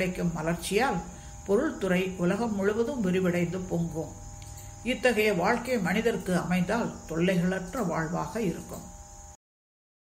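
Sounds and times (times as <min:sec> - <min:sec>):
woman speaking: 0:00.0 - 0:08.9.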